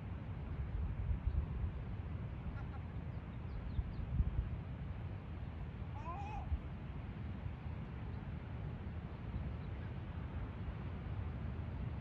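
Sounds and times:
gull mewing cry: 6.0 - 6.5.

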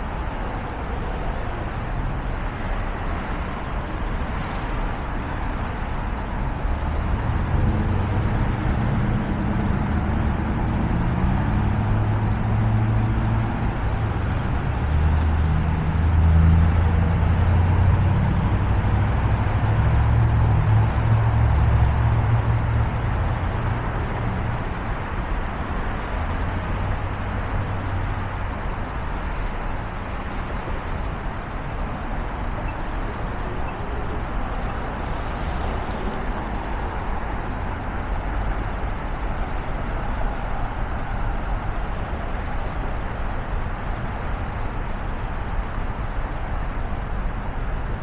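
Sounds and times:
road traffic noise: 0.0 - 48.0.

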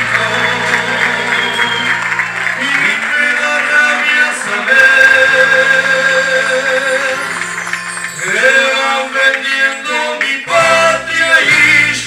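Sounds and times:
man singing: 0.0 - 7.5, 8.1 - 12.0
acoustic guitar: 0.0 - 12.0.

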